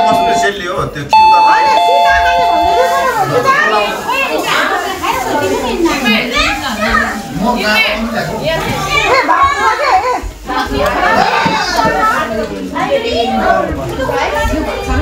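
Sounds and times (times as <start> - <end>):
electronic chime: 0.0 - 3.3
children shouting and chattering: 0.0 - 15.0.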